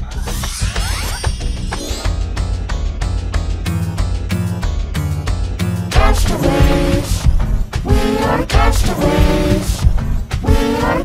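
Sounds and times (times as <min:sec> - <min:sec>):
cartoon music with fast beat: 0:00.0 - 0:11.0
rising glide: 0:00.2 - 0:02.4.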